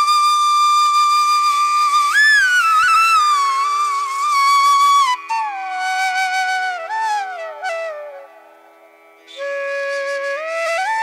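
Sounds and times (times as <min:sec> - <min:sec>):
slow flute melody: 0:00.0 - 0:11.0.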